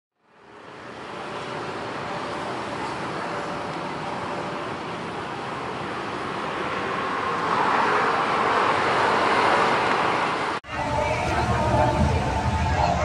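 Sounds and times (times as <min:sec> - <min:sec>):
road traffic noise: 0:00.2 - 0:13.0
vehicle passing: 0:04.7 - 0:13.0.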